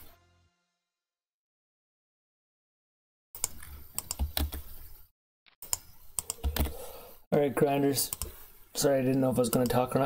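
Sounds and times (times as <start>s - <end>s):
keyboard typing: 3.4s - 4.9s, 5.6s - 6.9s.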